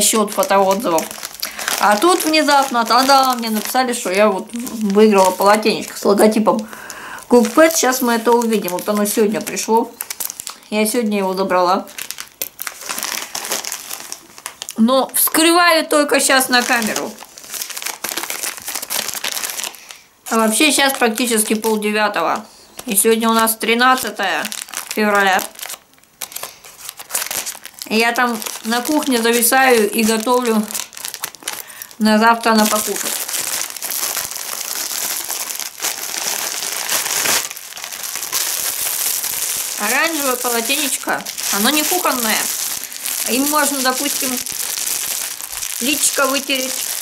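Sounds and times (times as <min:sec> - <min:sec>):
plastic bag crinkling: 0:00.0 - 0:47.0.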